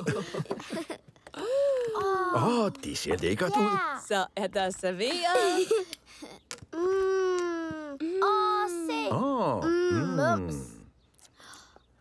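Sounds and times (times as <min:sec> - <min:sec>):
cartoon child moaning: 0:09.4 - 0:10.7.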